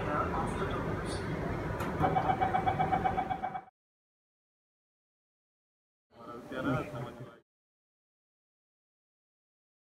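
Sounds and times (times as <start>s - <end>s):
rapid high beeps: 2.0s - 3.7s.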